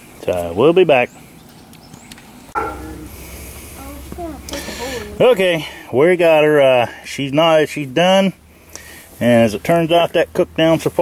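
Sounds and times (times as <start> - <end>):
low steady rumble: 2.5 - 5.9.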